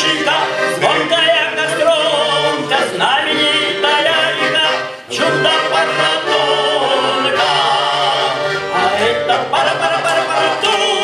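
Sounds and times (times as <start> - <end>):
men singing in harmony: 0.0 - 11.0.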